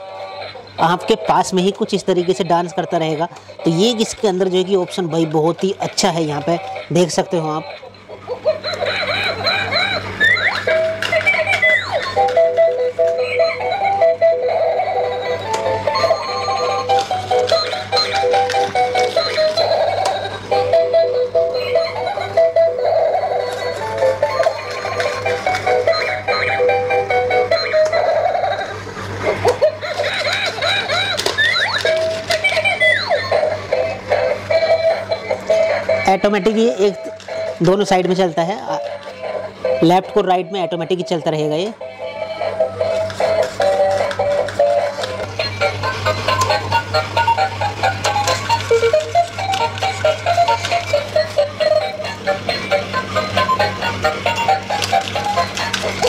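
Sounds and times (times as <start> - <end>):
toy beeping electronic melody: 0.0 - 28.8, 29.7 - 56.0
steady low hum: 0.0 - 56.0.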